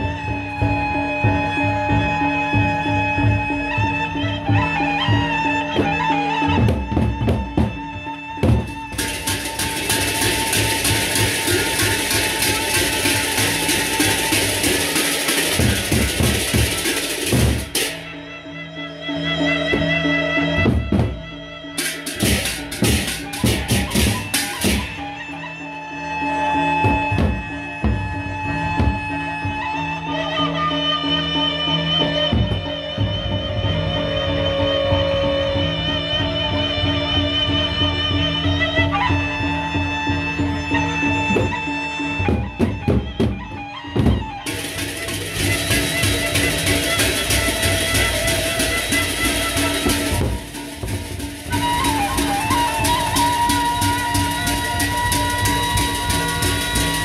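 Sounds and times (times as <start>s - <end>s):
drum beats: 0.0s - 18.2s, 19.6s - 25.5s, 26.6s - 30.0s, 32.0s - 33.5s, 40.6s - 57.0s
gamelan ensemble playing: 8.4s - 33.5s, 44.4s - 57.0s
cymbal crashes: 8.7s - 18.2s, 21.8s - 25.2s.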